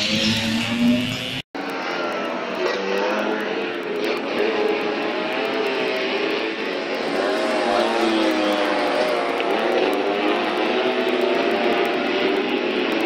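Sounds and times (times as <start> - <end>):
scooter engines revving past: 0.0 - 13.0.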